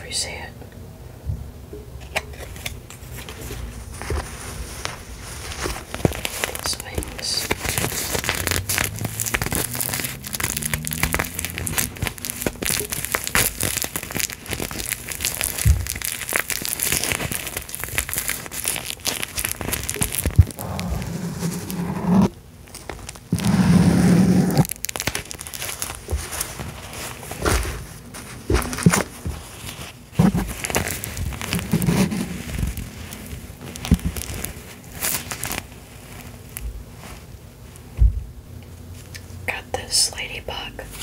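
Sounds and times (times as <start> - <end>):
metallic fabric crinkling: 2.1 - 38.0
low rubbing sound: 20.4 - 22.4, 23.3 - 24.7.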